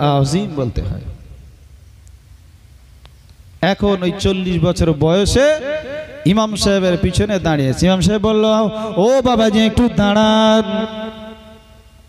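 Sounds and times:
man chanting through loudspeakers: 0:03.6 - 0:11.9.

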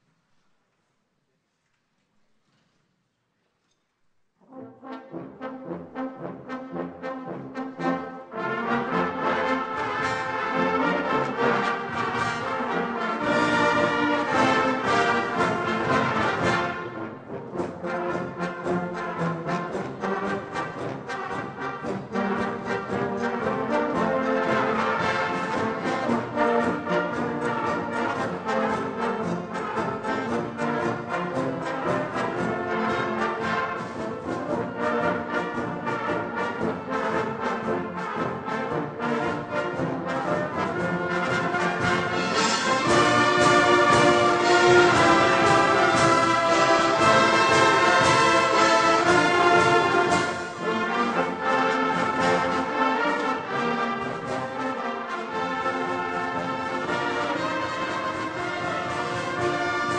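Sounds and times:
brass band playing: 0:04.4 - 0:59.9.

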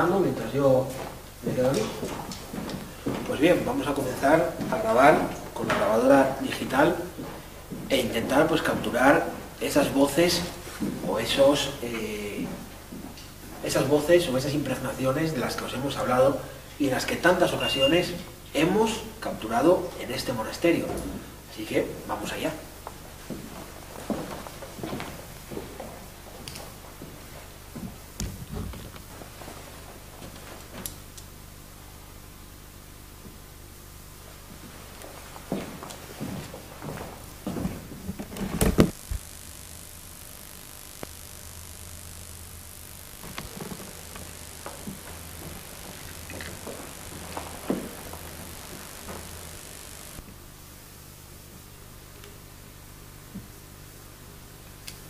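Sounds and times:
low hum and hiss: 0:00.0 - 0:55.0
footsteps: 0:00.8 - 0:08.9, 0:34.6 - 0:50.3.

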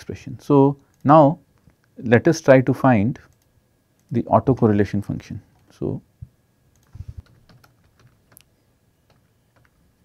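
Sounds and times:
keyboard typing: 0:06.7 - 0:09.8.

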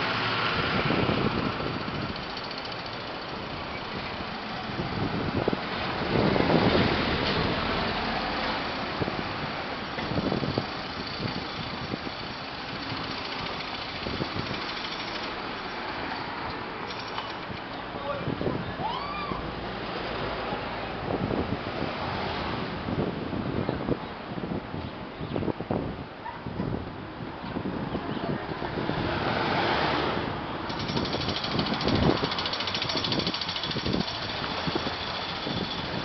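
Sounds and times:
traffic driving past: 0:00.0 - 0:23.2, 0:27.3 - 0:36.0.

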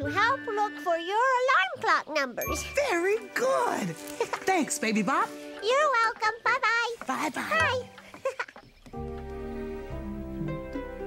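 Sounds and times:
children's music: 0:00.0 - 0:08.1.

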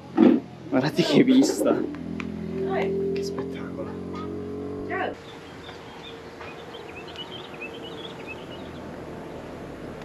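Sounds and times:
outdoor background hiss: 0:00.0 - 0:10.0
small birds chirping: 0:00.6 - 0:09.6.

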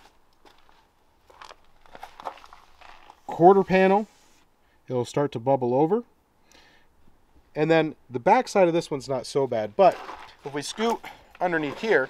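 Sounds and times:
footsteps crunching on gravel: 0:00.0 - 0:04.0, 0:09.6 - 0:12.0.

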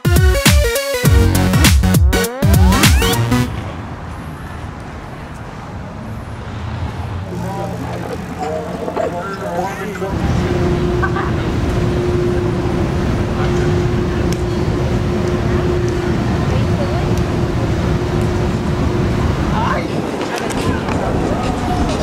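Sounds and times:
low rumble of vehicles: 0:02.6 - 0:22.0
steady low hum: 0:07.0 - 0:19.6
faint voices: 0:07.0 - 0:22.0.

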